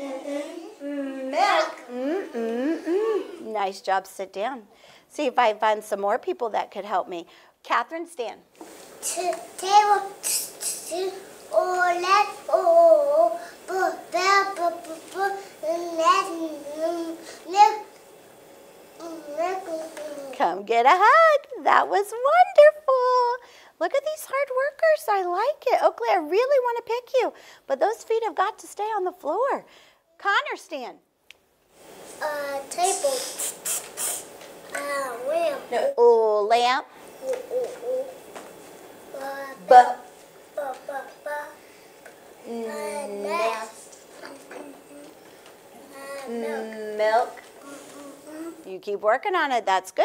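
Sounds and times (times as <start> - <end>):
child chanting: 9.1 - 17.8, 19.0 - 20.3, 32.2 - 33.4, 34.7 - 35.7, 39.1 - 39.8, 40.6 - 41.6, 42.5 - 45.2, 45.8 - 46.8, 47.6 - 48.6.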